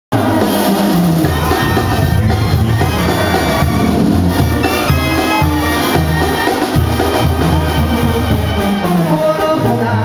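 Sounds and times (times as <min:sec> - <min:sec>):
live band with brass: 0:00.1 - 0:10.0
heavy pulsing bass line: 0:00.3 - 0:08.6.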